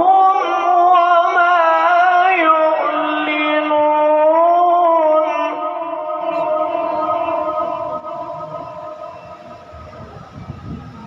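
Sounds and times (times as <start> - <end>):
sung recitation with echo: 0.0 - 10.5
low rumbling crowd noise: 5.6 - 11.0.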